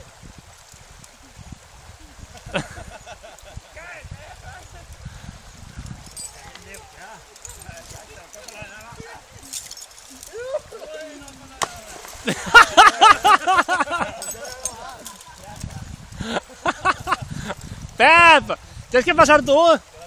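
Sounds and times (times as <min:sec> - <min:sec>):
fast-flowing river rushing: 0:00.0 - 0:20.0
person whooping: 0:10.2 - 0:11.0
quiet voices: 0:13.9 - 0:16.5.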